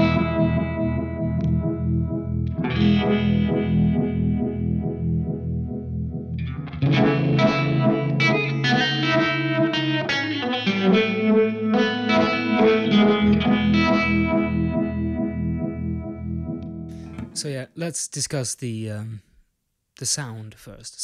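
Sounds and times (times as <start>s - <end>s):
electric guitar chords pulsing: 0.0s - 17.3s.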